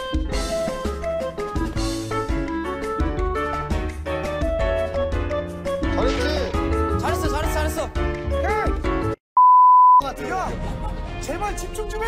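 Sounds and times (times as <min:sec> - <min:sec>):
background music: 0:00.0 - 0:09.2, 0:10.0 - 0:12.0
loud censor bleep tone: 0:09.4 - 0:10.0.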